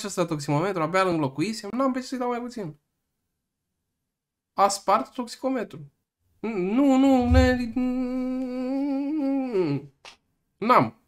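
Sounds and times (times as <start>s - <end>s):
man humming: 6.4s - 9.8s.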